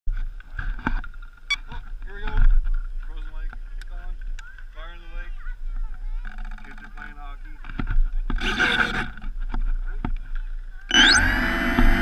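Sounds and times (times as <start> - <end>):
wind rumble on microphone: 0.1 - 12.0
faint high whine: 10.9 - 12.0
sharp clicks: 10.9 - 12.0.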